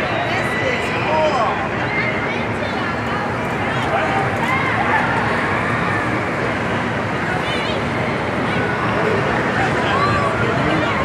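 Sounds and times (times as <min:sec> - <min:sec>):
amusement ride running: 0:00.0 - 0:11.0
indoor crowd hubbub: 0:00.0 - 0:11.0.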